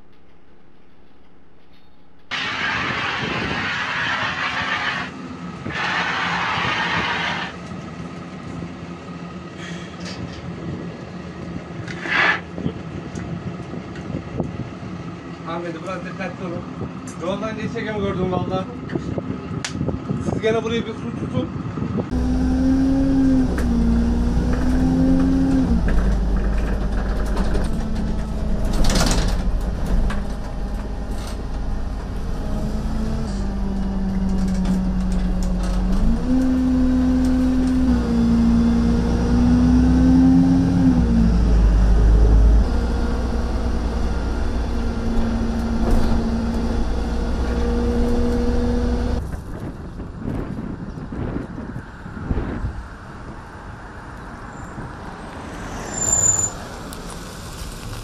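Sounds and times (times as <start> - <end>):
bus engine running: 0.0 - 58.0.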